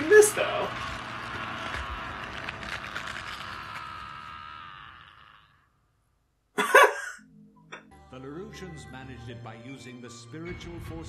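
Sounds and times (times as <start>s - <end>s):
noisy crackling sound effect: 0.0s - 5.6s.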